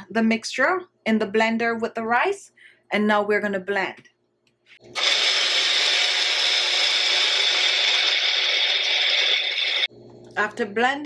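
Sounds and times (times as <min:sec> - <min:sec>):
blender grinding rice: 0:04.8 - 0:09.9.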